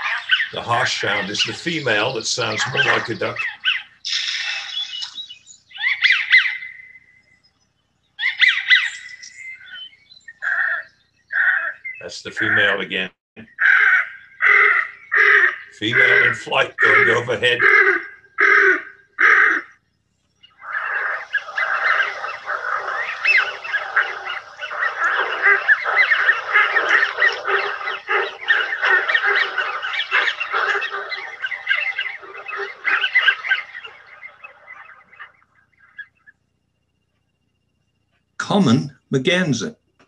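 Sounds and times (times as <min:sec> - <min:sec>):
harsh duck calls: 0:00.0 - 0:04.8, 0:11.4 - 0:19.7, 0:20.6 - 0:34.9
flock of ducks whistling and calling: 0:00.0 - 0:07.2, 0:08.2 - 0:13.0, 0:14.5 - 0:19.6, 0:20.5 - 0:36.2.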